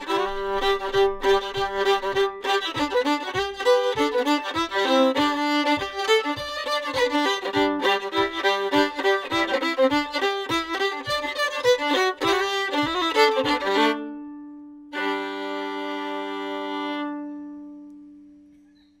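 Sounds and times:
steady low beat: 0.0 - 14.0
fiddle playing: 0.0 - 18.4.

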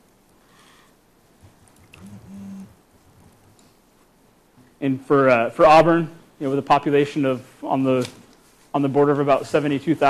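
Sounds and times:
person humming murmur: 2.0 - 2.8.

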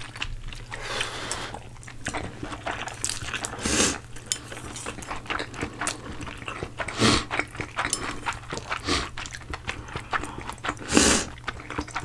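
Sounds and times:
people chewing noodles: 0.0 - 12.0.

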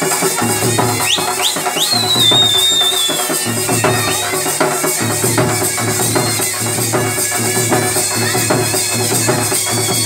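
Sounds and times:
folk band barrel drums: 0.0 - 10.0
shrill whistle: 0.9 - 4.4, 5.6 - 7.5, 8.1 - 10.0.

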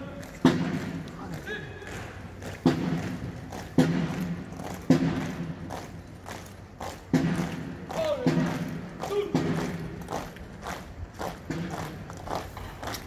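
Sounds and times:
marching bass drum beats: 0.2 - 12.9.

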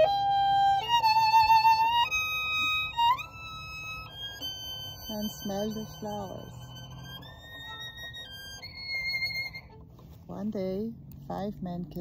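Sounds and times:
solo violin long held notes: 0.0 - 10.2.

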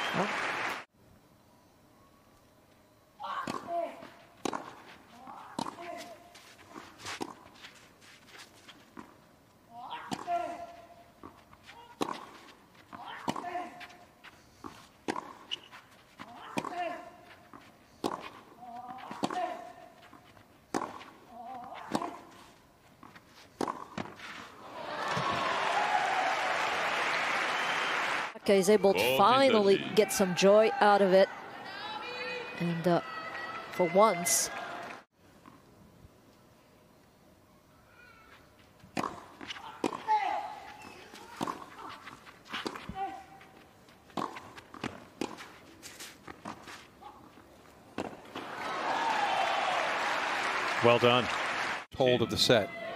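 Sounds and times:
crowd applauding: 0.0 - 0.9, 24.7 - 28.4, 48.4 - 51.9
tennis ball struck by rackets: 3.4 - 7.4, 10.0 - 14.0, 14.6 - 22.4, 23.0 - 24.3, 38.9 - 45.6, 48.0 - 48.5.

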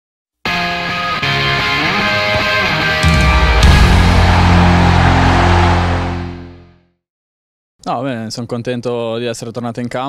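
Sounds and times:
distorted rock guitar chord: 0.5 - 6.7.

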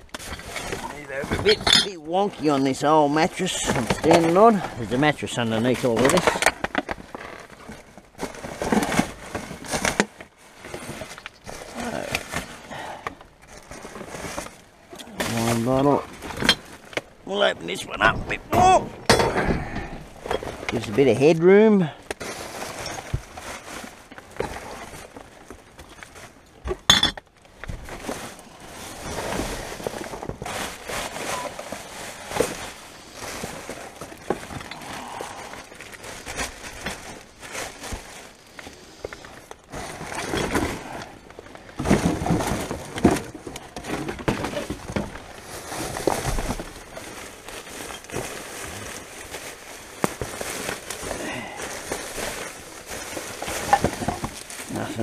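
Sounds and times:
cardboard and plastic bags rustling: 0.0 - 55.0.

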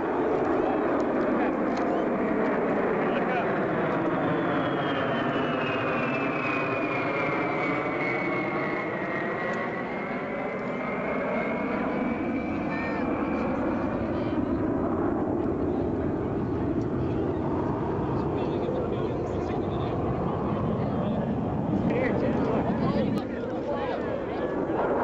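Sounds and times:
jet aircraft flying overhead: 0.0 - 25.0.

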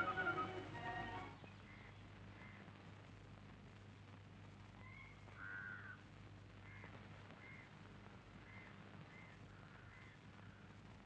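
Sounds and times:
crow cawing: 5.4 - 6.0, 8.5 - 10.6.

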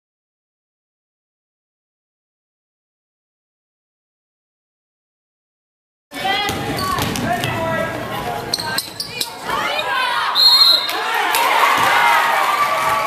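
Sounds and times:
voices shouting: 8.6 - 13.0
referee's whistle blast: 10.4 - 11.0.

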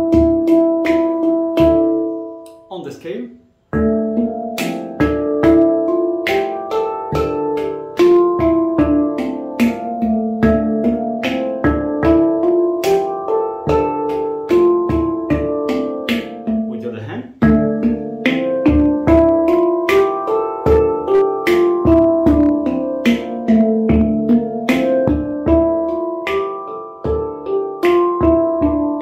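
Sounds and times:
handpan groove: 0.0 - 3.0, 3.6 - 29.0.

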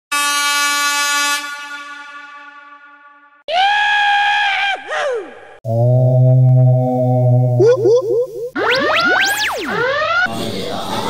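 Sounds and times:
air horn blast: 0.1 - 3.4
low synthesizer tone: 5.7 - 10.6.

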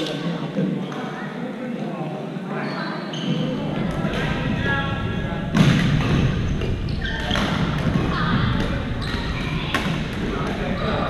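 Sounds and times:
players' voices chattering: 0.0 - 11.0
racket hits and thuds: 5.4 - 10.7.

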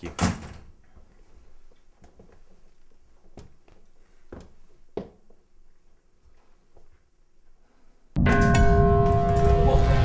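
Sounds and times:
grandfather clock chime: 8.2 - 10.0.

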